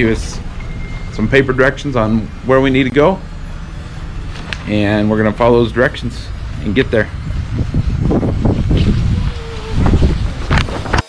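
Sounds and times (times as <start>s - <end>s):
wind buffeting microphone: 6.3s - 11.0s.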